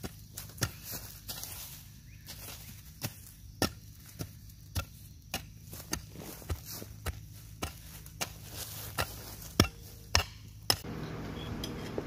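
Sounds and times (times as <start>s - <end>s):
hoe striking soil: 3.0s - 12.0s.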